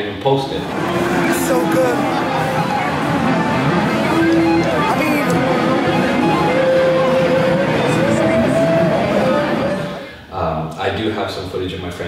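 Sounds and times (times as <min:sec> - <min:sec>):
crowd chatter: 0:00.4 - 0:10.2
electric guitar lead: 0:00.4 - 0:10.2.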